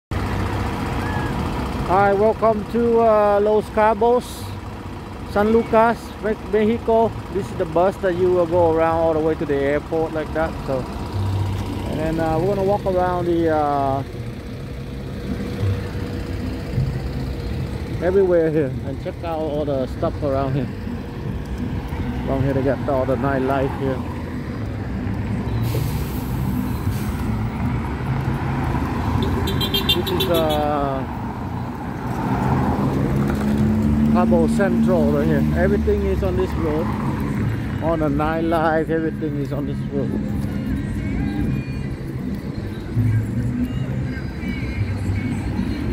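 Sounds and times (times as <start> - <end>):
bus engine idling: 0.1 - 33.2
cars passing: 0.1 - 45.9
man speaking: 11.9 - 14.1, 18.0 - 20.7, 22.2 - 24.1, 29.9 - 31.2, 34.1 - 36.9.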